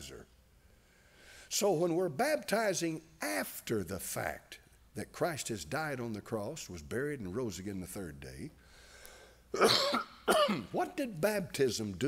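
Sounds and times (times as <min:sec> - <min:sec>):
man coughing and clearing throat: 0:09.5 - 0:10.8.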